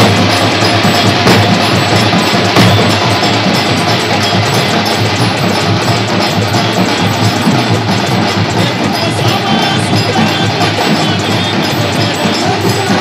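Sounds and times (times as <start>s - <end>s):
dhol drums beating: 0.0s - 13.0s.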